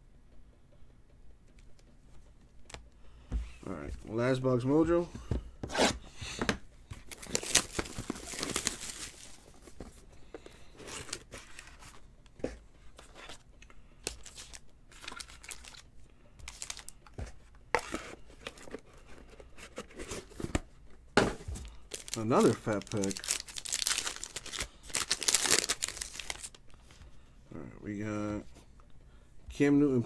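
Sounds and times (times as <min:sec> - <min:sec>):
cards and box handled: 0:05.6 - 0:13.4, 0:14.0 - 0:15.8, 0:16.4 - 0:27.0
foil wrapper tearing and crinkling: 0:07.1 - 0:09.4, 0:14.1 - 0:15.9, 0:16.5 - 0:17.0, 0:21.9 - 0:26.6.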